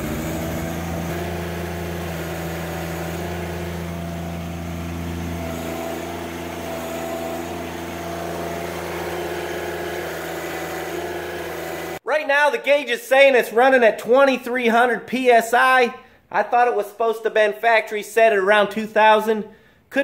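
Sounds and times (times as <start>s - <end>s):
diesel tractor engine running: 0.0s - 12.0s.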